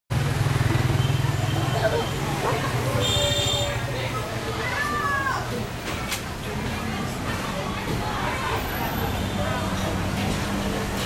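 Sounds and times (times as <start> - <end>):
motorbike engines passing: 0.1 - 11.0
faint voices: 1.1 - 11.0.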